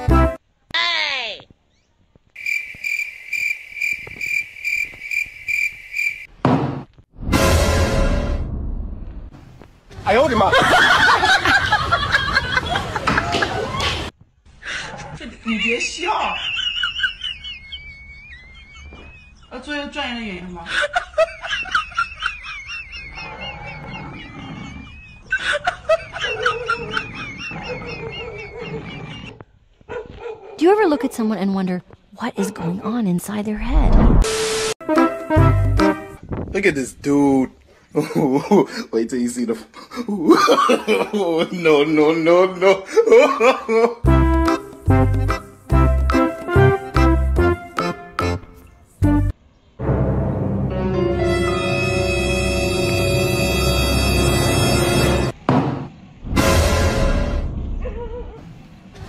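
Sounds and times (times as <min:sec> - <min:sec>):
cricket-like chirping trill: 0:02.4 - 0:06.3
person snickering: 0:42.6 - 0:44.0.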